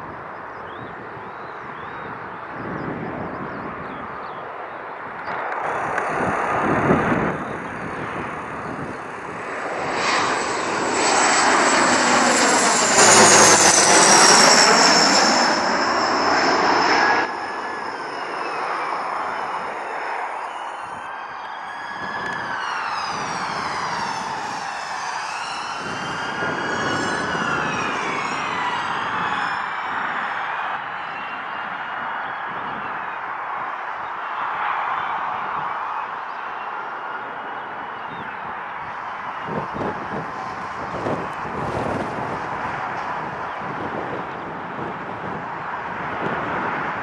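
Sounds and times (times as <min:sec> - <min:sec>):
turboprop aircraft landing: 0:00.1 - 0:47.0.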